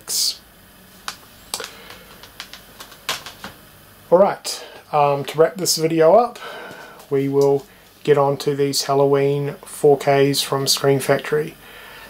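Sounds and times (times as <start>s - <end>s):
plastic disc cases clicking: 1.1s - 3.6s.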